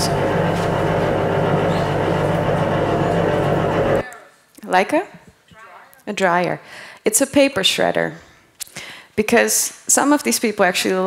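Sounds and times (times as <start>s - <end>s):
paper shredder running: 0.0s - 4.0s.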